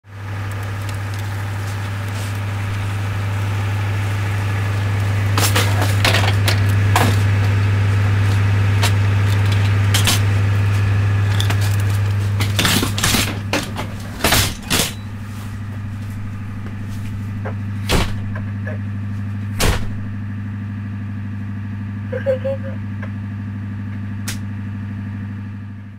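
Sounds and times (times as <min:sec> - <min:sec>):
ambulance engine idling: 0:00.1 - 0:25.9
vehicle doors slamming: 0:12.8 - 0:18.6, 0:19.4 - 0:20.2.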